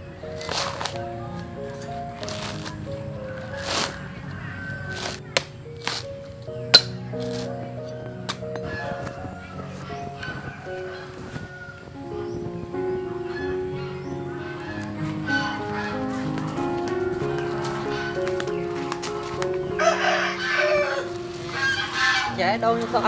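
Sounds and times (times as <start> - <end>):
slow background music: 0.0 - 23.0
rooster crowing: 3.3 - 5.3, 8.7 - 12.0, 19.7 - 22.4.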